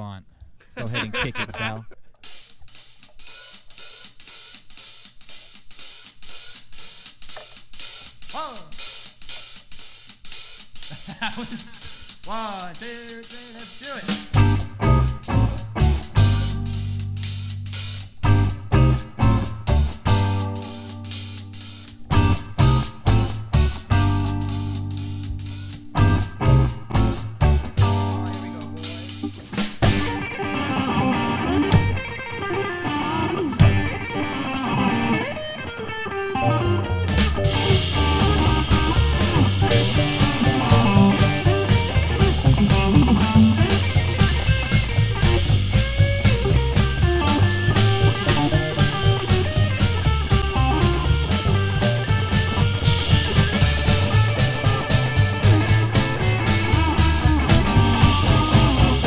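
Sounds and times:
upright bass: 0.8 - 2.0, 14.1 - 30.3, 36.4 - 59.0
drum kit with cymbals: 1.0 - 32.4, 33.5 - 34.4, 37.1 - 59.0
electric guitar: 14.3 - 59.0.

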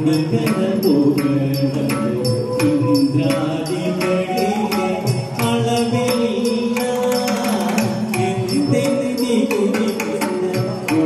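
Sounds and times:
man singing long held notes: 0.0 - 11.0
mridangam strokes: 0.0 - 11.0.

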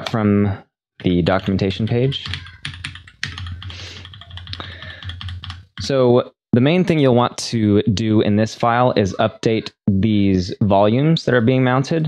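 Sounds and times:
computer keyboard keystrokes: 2.2 - 5.8.

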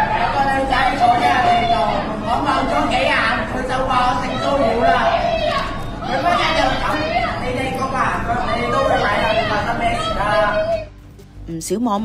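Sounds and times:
voices chattering: 0.0 - 10.9.

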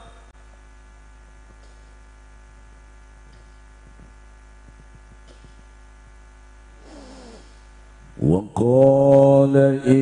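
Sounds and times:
mains hum from sound system: 0.0 - 10.0.

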